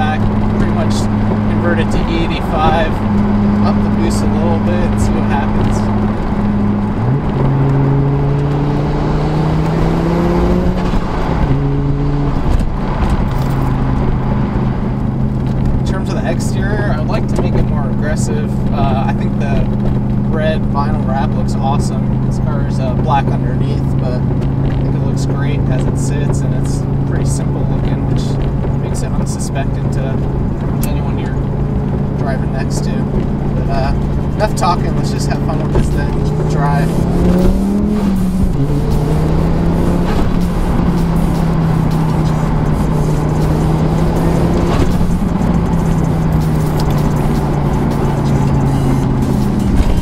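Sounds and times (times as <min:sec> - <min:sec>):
car engine revving from inside cabin: 0:00.0 - 0:14.8, 0:33.0 - 0:50.0.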